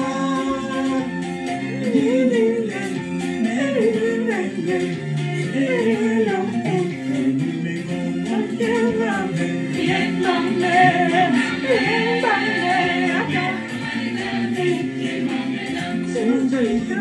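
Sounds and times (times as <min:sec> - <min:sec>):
choir singing in harmony: 0:05.4 - 0:17.0.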